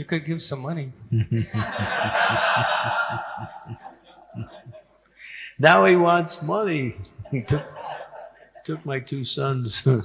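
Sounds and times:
rhythmic chuckles: 1.1 - 5.2, 7.0 - 8.9
room laughter: 1.2 - 5.0, 7.0 - 8.9.

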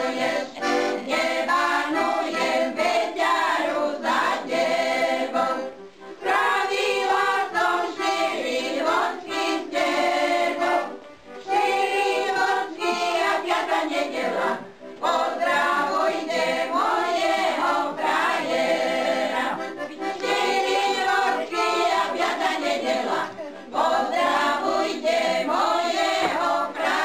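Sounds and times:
group of voices singing: 0.0 - 27.0.

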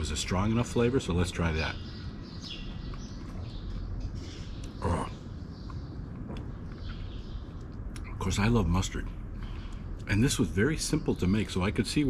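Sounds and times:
faint bird chirps: 0.0 - 12.0
steady low hum: 0.0 - 12.0
man chewing food: 2.6 - 8.1.

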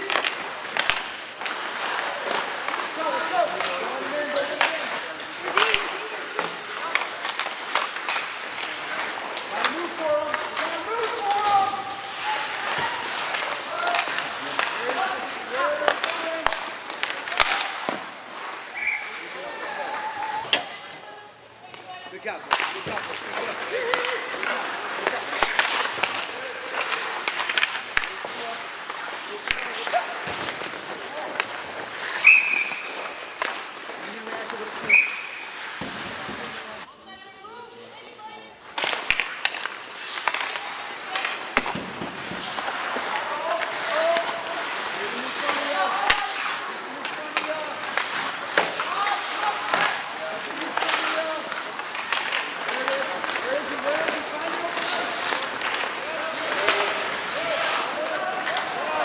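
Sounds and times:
sticks and puck clacking: 0.0 - 21.0, 21.6 - 36.9, 37.6 - 59.0
people calling out: 10.7 - 14.2, 18.7 - 21.4.

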